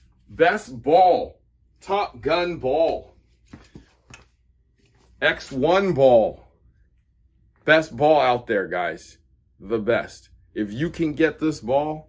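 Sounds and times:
faint handling knocks and rustles: 2.8 - 5.6.

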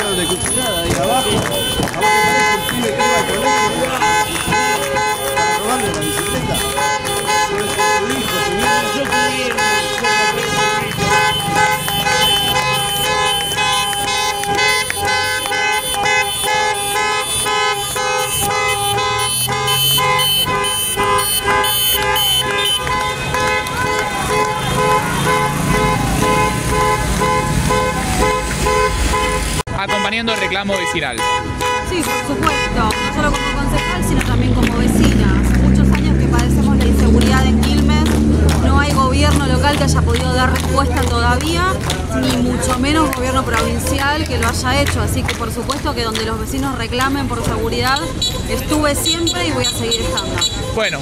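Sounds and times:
car horns honking: 0.0 - 51.0
vehicle engine noise: 0.0 - 51.0.

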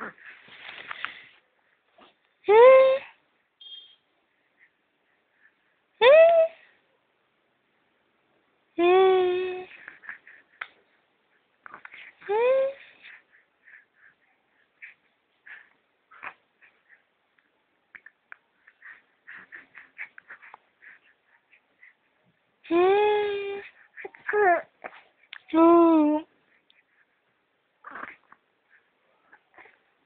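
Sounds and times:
baby breathy vocal sound: 9.5 - 10.7, 11.6 - 17.1, 17.9 - 22.1, 22.7 - 25.3
baby grunting: 27.8 - 28.4.

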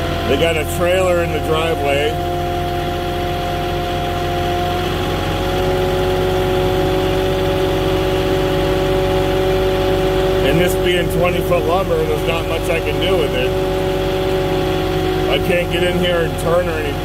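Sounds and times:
forklift engine running: 0.0 - 17.0.

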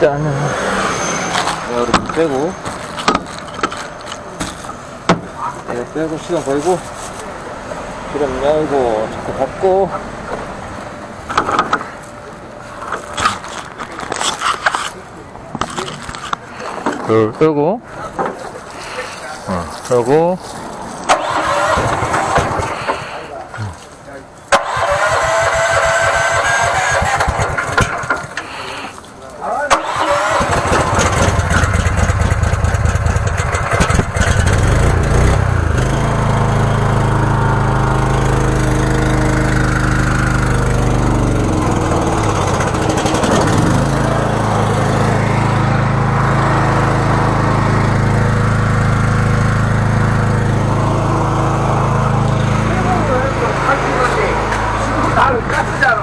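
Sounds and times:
engine cranking and running: 0.0 - 6.9, 21.0 - 23.8, 24.5 - 56.0.

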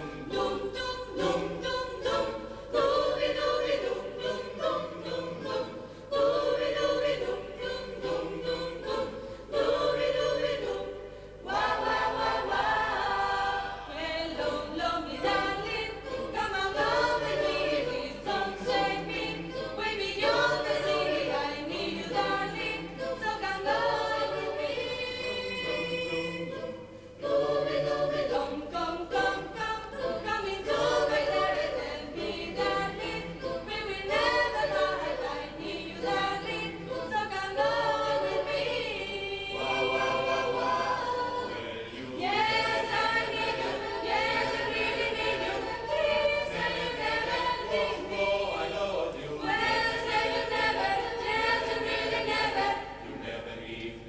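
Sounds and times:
youth choir singing in harmony: 0.0 - 53.9.

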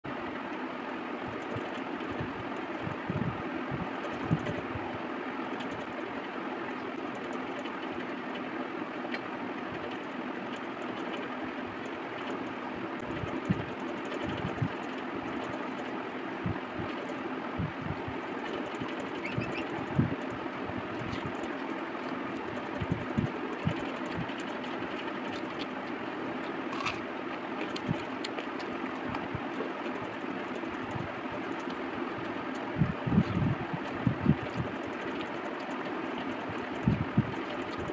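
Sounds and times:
steady background hum: 0.0 - 37.9
hands squelching food: 18.8 - 37.9.

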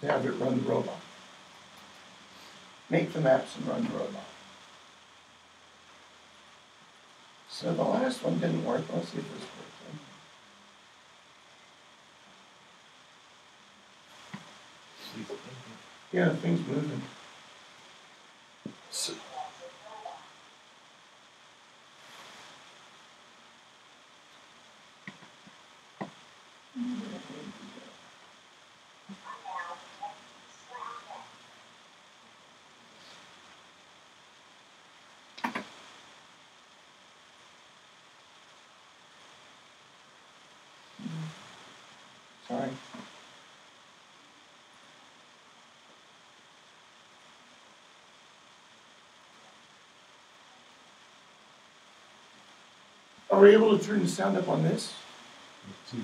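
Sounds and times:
faint words and murmurs: 15.0 - 17.2, 18.7 - 20.5, 26.8 - 28.0, 29.1 - 31.4, 40.9 - 41.6, 55.7 - 56.0.

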